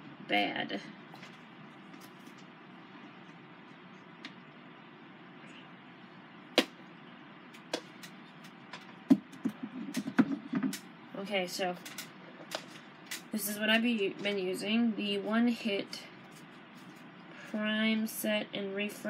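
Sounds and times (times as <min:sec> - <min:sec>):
low room hiss: 0:00.0 - 0:19.0.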